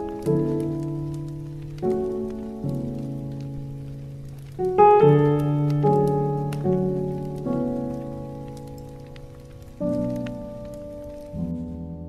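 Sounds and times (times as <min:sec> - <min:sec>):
jazz piano chords: 0:00.0 - 0:12.0
log fire crackling: 0:00.0 - 0:12.0.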